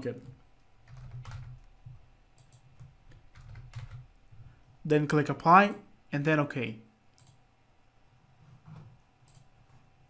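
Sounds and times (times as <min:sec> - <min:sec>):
typing on computer keyboard: 0:00.2 - 0:04.1, 0:07.2 - 0:07.4, 0:08.7 - 0:09.8.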